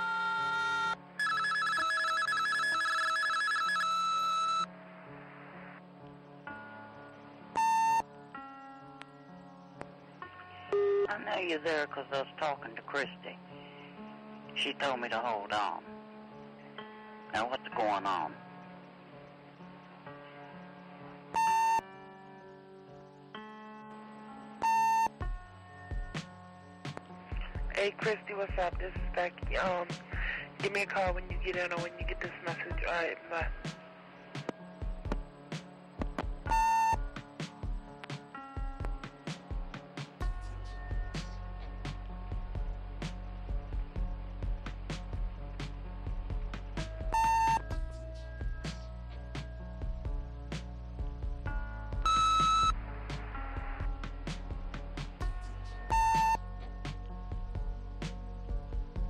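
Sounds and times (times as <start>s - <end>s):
soft background music: 0.0s - 59.0s
answering machine beep: 0.8s - 4.7s, 7.6s - 8.0s, 21.4s - 21.8s, 24.6s - 25.2s, 36.5s - 37.1s, 47.1s - 47.8s, 52.0s - 52.8s, 55.9s - 56.4s
electronic beep: 7.6s - 8.1s, 21.4s - 21.8s, 24.6s - 25.2s, 36.5s - 37.1s, 47.1s - 47.8s, 52.0s - 52.8s, 55.9s - 56.4s
background music with drum beat: 34.4s - 59.0s.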